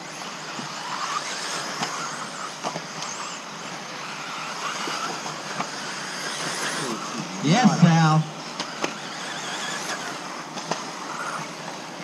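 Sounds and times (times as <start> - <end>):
rc car motor whine: 0.0 - 12.0
tyres rushing on dirt track: 0.0 - 12.0.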